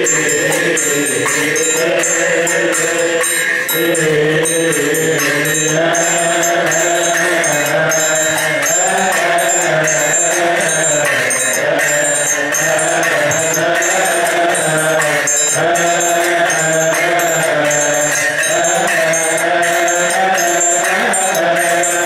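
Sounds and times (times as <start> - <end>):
men chanting in unison: 0.0 - 22.0
triangle and hand cymbals: 0.0 - 22.0.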